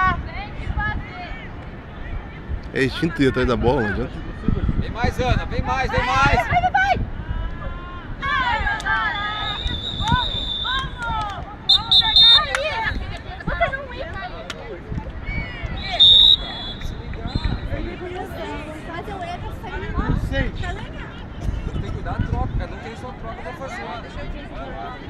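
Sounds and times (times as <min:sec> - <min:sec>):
players and spectators shouting: 0:03.6 - 0:13.1, 0:15.3 - 0:18.8
referee's whistle blasts: 0:09.1 - 0:10.9, 0:11.7 - 0:13.0, 0:15.8 - 0:17.7.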